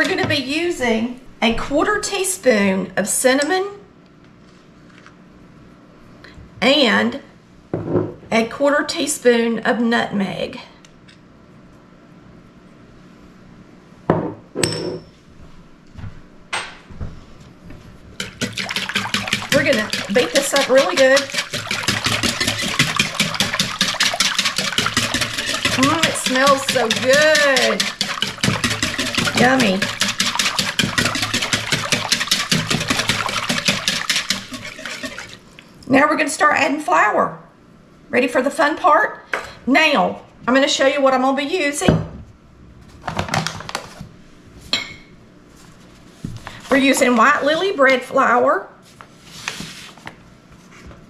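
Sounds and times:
whisk beating batter in bowl: 0:00.0 - 0:00.4, 0:18.2 - 0:35.5
glass jars clinking on counter: 0:14.6 - 0:15.1.

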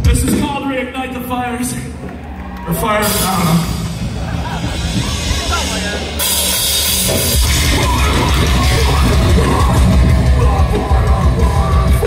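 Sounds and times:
metalcore band playing live: 0:02.7 - 0:12.0
drums and cymbals: 0:03.0 - 0:12.0.

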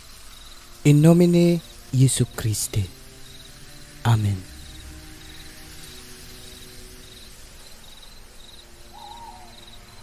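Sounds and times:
crickets chirping: 0:00.0 - 0:10.0
low steady drone: 0:00.0 - 0:10.0
owl hoot: 0:08.9 - 0:09.8.

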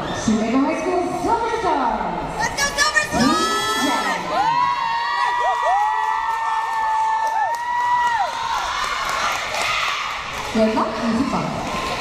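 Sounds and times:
crowd noise: 0:00.0 - 0:12.0
high-pitched screams and whoops: 0:03.0 - 0:10.2.

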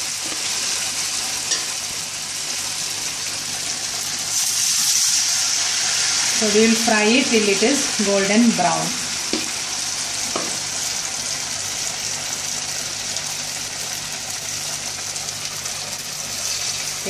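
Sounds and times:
food deep-frying in hot oil: 0:00.0 - 0:17.0.

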